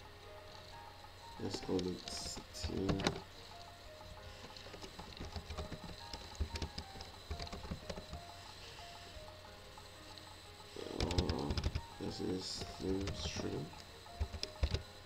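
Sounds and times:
keyboard key clicks: 4.8s - 8.3s, 14.2s - 14.8s.

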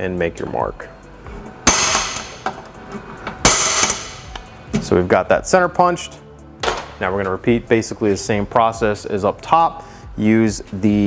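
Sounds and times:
center punch striking metal: 1.6s - 2.6s, 3.4s - 4.5s.

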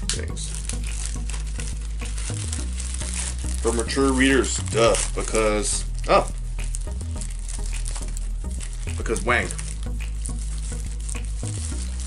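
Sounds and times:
plastic sleeve crinkling: 0.0s - 12.0s.

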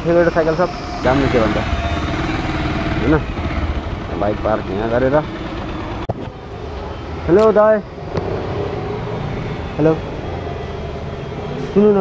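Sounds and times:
motorcycle engine idling: 0.6s - 7.5s.

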